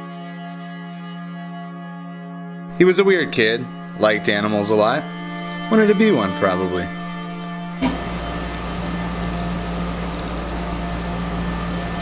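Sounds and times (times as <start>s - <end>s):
electrical hum and hiss: 2.8s - 12.0s.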